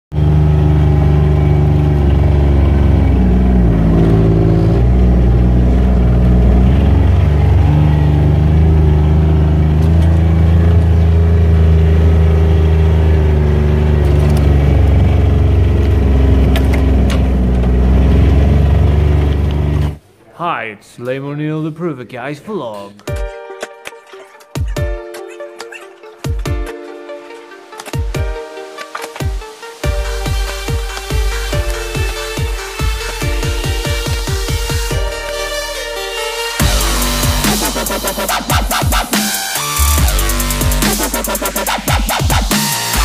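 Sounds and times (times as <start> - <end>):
vehicle engine running under load: 0.1 - 20.0, 28.7 - 43.0.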